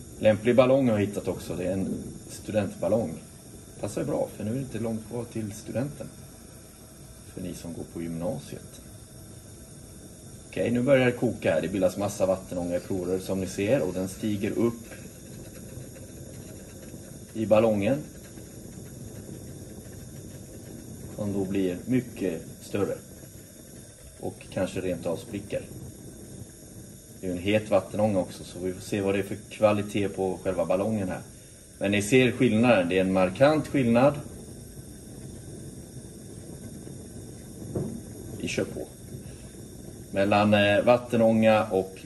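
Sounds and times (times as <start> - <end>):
gas burner flame hissing: 0.0 - 42.0.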